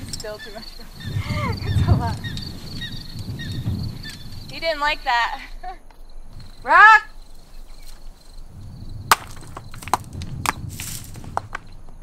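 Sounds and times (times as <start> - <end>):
rocks clattering down cliff: 9.1 - 12.0.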